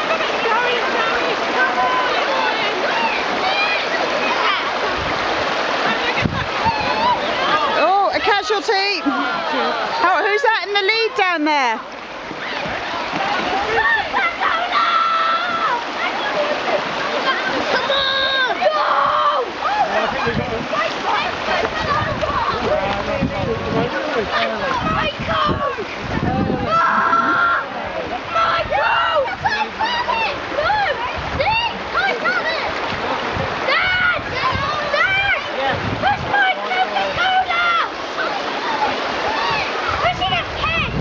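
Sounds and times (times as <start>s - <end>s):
people calling: 0.0s - 41.0s
river water rushing over rocks: 0.0s - 41.0s
children shouting excitedly: 0.1s - 4.8s, 6.0s - 10.4s, 12.4s - 22.8s, 24.2s - 32.8s, 33.6s - 41.0s.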